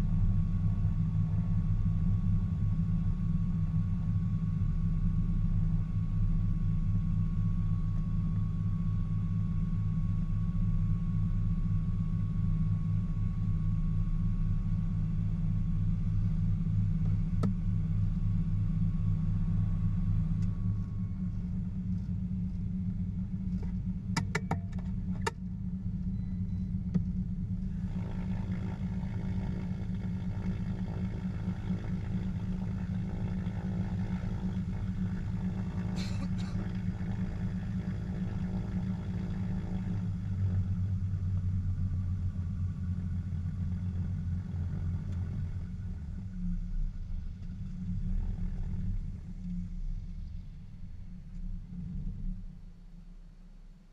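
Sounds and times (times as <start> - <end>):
aircraft piston engines idling: 20.6 - 40.5
cockpit switch clicks: 24.2 - 25.4.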